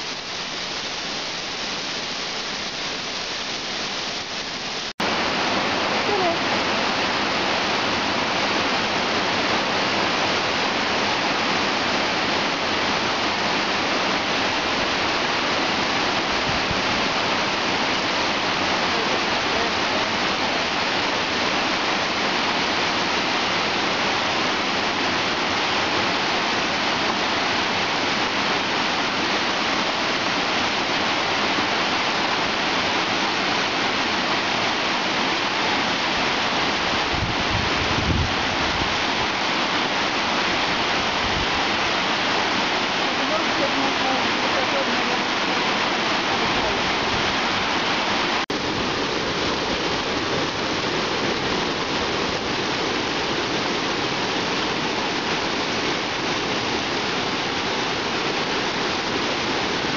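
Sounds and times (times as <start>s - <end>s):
waterfall rushing: 0.0s - 59.9s.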